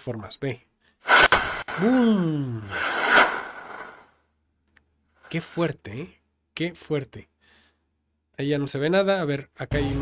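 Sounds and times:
man making explosion noise: 1.1s - 4.0s.

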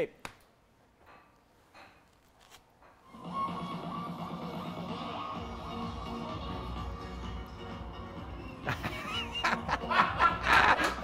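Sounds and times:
music: 3.0s - 11.0s
man laughing: 8.6s - 11.0s.

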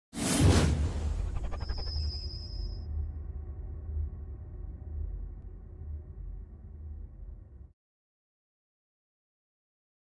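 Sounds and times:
loud whoosh: 0.2s - 4.3s
thin high ringing tone: 1.5s - 2.9s
deep bass rumble: 2.8s - 7.7s.

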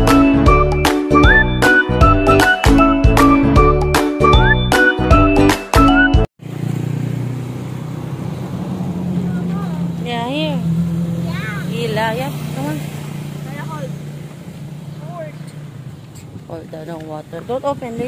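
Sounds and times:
vehicle engine hum: 6.4s - 18.0s
children's voices: 9.2s - 12.0s.

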